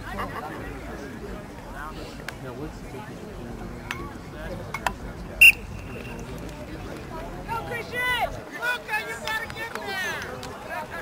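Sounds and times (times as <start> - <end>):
referee's whistle blast: 5.4 - 6.2.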